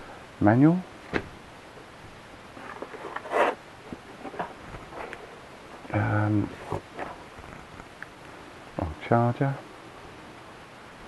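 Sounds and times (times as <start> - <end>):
faint rustles and clicks: 1.0 - 8.4
cable scraping out of foam case: 2.6 - 3.6.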